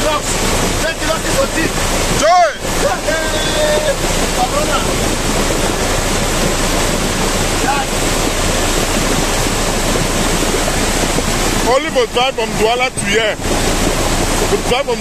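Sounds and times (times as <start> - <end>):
floodwater rushing: 0.0 - 15.0.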